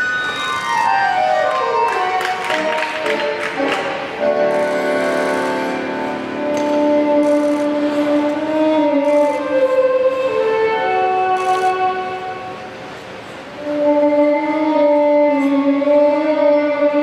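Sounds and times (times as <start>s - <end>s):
slow string-led instrumental music: 0.0s - 17.0s.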